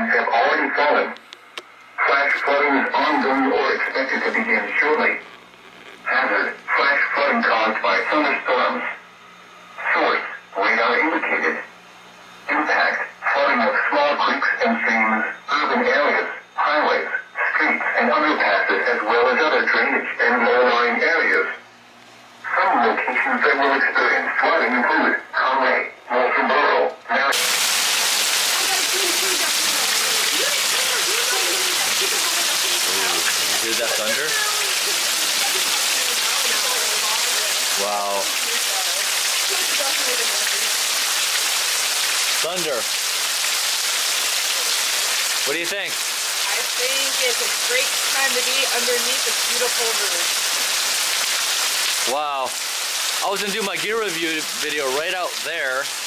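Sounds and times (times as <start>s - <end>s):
announcer voice over broadcast: 0.0s - 1.2s, 2.0s - 5.4s, 6.0s - 9.0s, 9.8s - 11.7s, 12.5s - 21.6s, 22.4s - 27.6s, 28.4s - 40.7s, 42.4s - 42.9s, 45.4s - 50.3s, 52.0s - 52.6s, 53.2s - 55.9s
heavy rain on pavement: 27.3s - 56.0s
faint voices: 28.4s - 40.8s.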